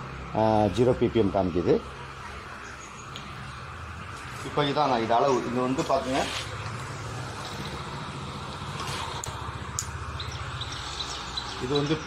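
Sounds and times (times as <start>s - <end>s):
air blower humming: 0.0s - 12.0s.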